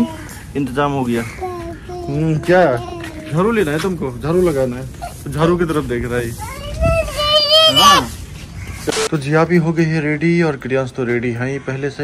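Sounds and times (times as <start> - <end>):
toddler calling: 6.4 - 8.1.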